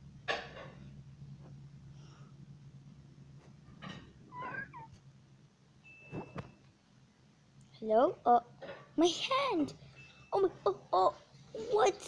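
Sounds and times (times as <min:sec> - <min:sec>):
high wavering mewing call: 0:04.3 - 0:05.0.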